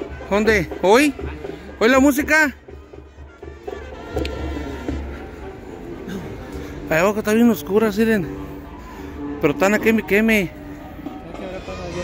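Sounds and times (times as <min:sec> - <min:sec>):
distant music bass beat: 0:00.0 - 0:12.0.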